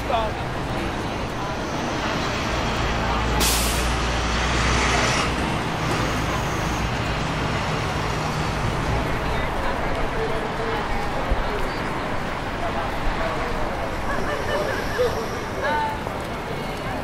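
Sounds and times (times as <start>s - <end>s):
heavy vehicle engine rumbling: 0.0s - 17.0s
street traffic: 0.0s - 17.0s
air brakes hissing: 3.4s - 4.0s.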